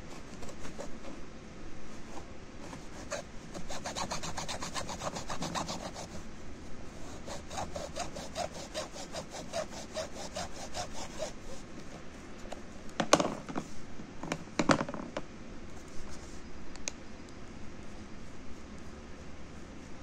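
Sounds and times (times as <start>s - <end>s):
hacksaw cutting plastic: 2.8s - 6.2s, 7.1s - 11.5s.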